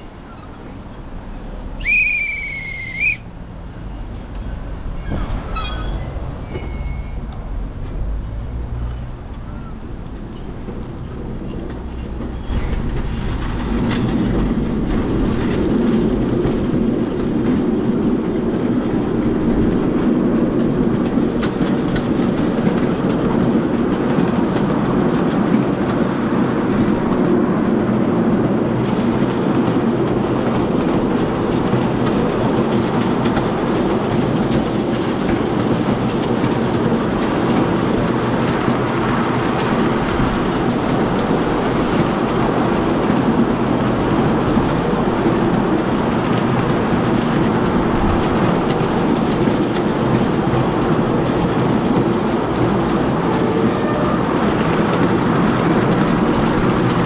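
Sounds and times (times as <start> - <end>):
miniature train wheels rumbling: 0.0 - 57.0.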